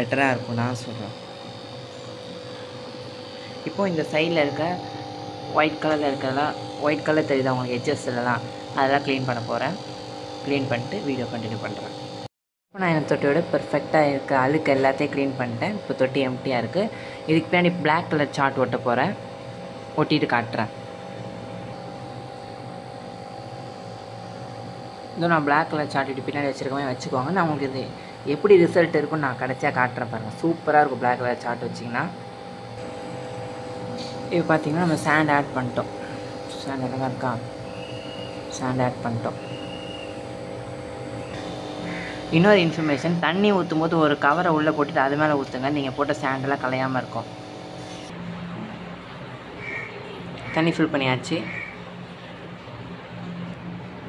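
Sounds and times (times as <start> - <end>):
steady electrical hum: 0.0 - 54.0
person speaking: 3.4 - 9.8, 41.9 - 47.3.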